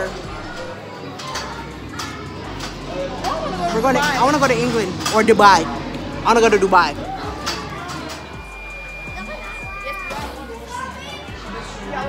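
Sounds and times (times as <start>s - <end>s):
children and adults talking: 0.0s - 12.0s
music: 0.0s - 12.0s.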